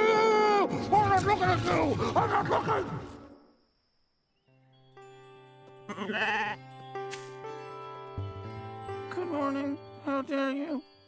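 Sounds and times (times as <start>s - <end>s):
soft background music: 4.4s - 11.0s
sheep bleating: 5.9s - 6.6s.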